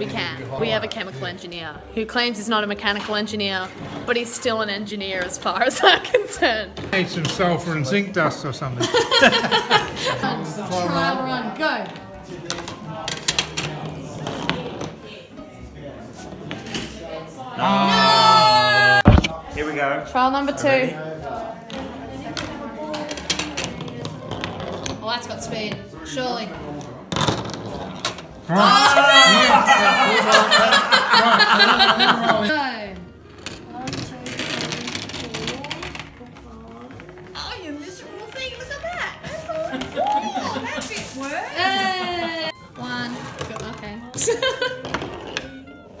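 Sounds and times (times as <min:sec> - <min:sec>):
murmur of voices: 0:00.0 - 0:44.8
murmuring voices: 0:17.5 - 0:19.4, 0:28.4 - 0:32.9.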